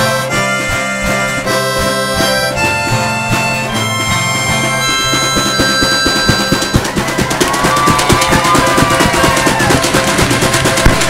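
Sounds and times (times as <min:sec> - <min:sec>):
drum strokes: 0:00.0 - 0:11.0
sliding melody line: 0:00.0 - 0:11.0.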